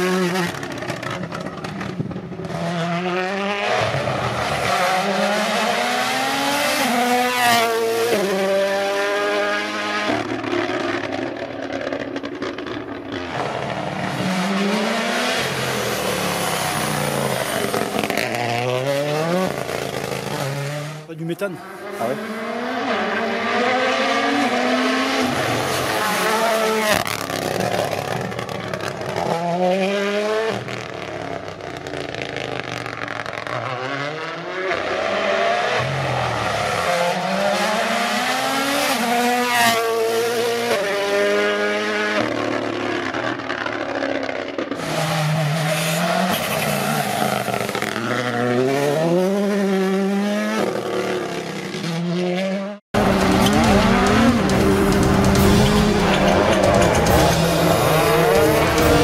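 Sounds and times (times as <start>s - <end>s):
rally car engine at full throttle: 0.0s - 59.0s.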